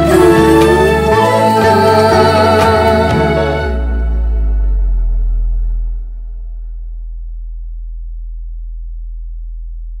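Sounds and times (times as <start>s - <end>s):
deep low drone: 0.0s - 10.0s.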